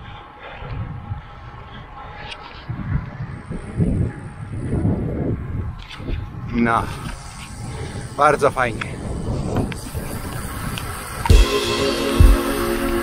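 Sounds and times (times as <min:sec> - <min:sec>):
faint road noise: 0:00.0 - 0:11.4
wind buffeting microphone: 0:00.0 - 0:11.4.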